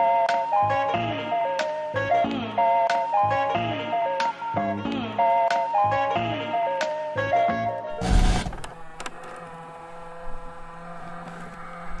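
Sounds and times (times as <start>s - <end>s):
music: 0.0s - 12.0s
burst of static noise: 8.0s - 8.7s
steady electrical hum: 8.0s - 9.0s.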